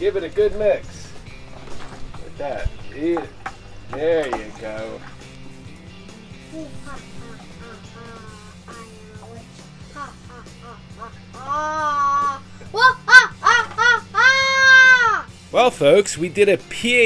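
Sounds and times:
background music: 0:00.0 - 0:17.0.

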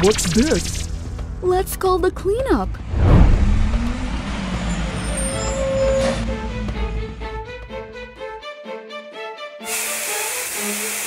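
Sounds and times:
light background music: 0:00.0 - 0:11.0
aerosol spray can hissing: 0:09.7 - 0:11.0.

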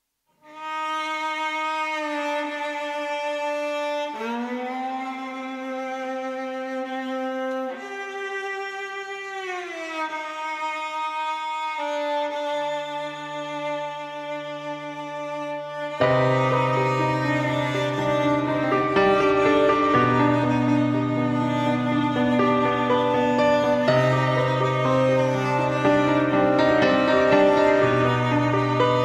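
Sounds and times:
viola playing long bowed notes: 0:00.4 - 0:29.0.

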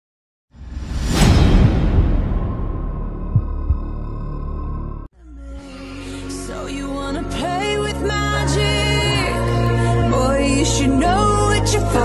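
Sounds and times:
deep rumble: 0:00.6 - 0:05.1
rising whoosh: 0:00.6 - 0:05.1
low thuds: 0:01.0 - 0:04.6.

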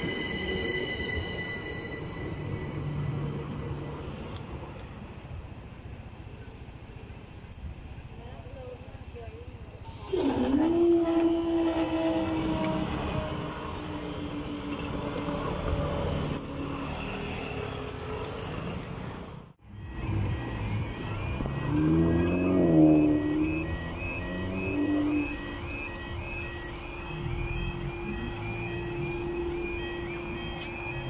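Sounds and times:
electric train humming: 0:00.0 - 0:07.4, 0:10.0 - 0:18.6, 0:19.6 - 0:31.0
road traffic: 0:00.0 - 0:31.0
engine revving: 0:19.7 - 0:25.5
level crossing alarm warbling: 0:19.7 - 0:31.0.

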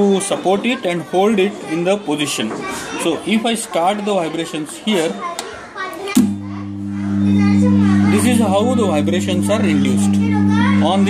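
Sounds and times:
massage machine humming: 0:06.2 - 0:11.0.

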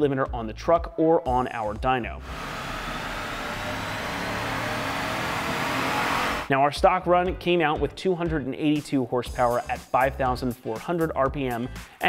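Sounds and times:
engine running under load: 0:02.2 - 0:06.5
tyres on dyno roller: 0:02.2 - 0:06.5.

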